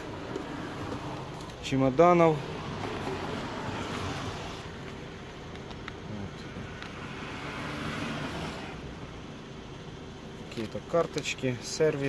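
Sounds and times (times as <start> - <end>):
vehicle noise: 0.0 - 12.0.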